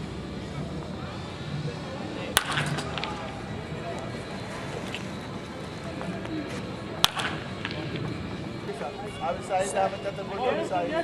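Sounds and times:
ballpark ambience: 0.0s - 11.0s
distant voices: 0.0s - 11.0s
wooden bat cracking a ball: 2.3s - 3.4s, 7.0s - 8.2s.

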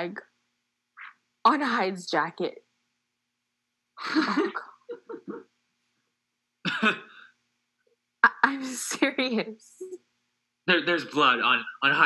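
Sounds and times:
man laughing: 6.7s - 7.2s, 10.7s - 12.0s.

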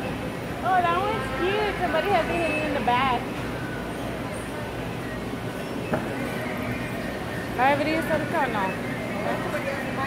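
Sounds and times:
store background hum: 0.0s - 10.0s.

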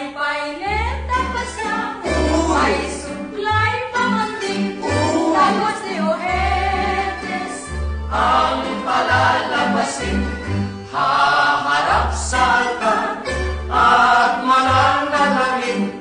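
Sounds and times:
group singing into a microphone: 1.6s - 3.2s, 4.7s - 16.0s.

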